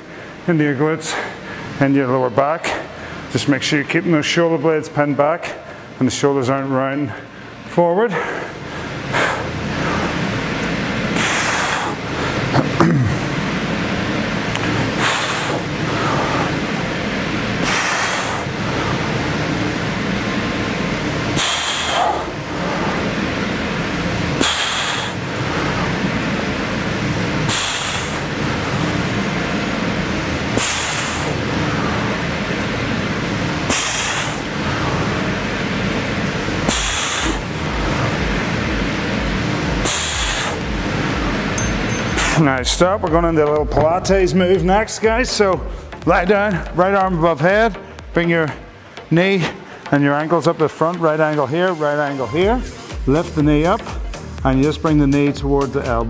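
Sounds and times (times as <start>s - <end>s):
steady background noise: 0.0s - 56.0s.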